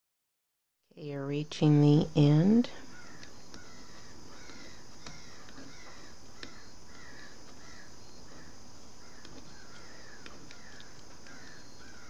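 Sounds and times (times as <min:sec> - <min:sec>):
faint bird calls: 0:02.7 - 0:12.0.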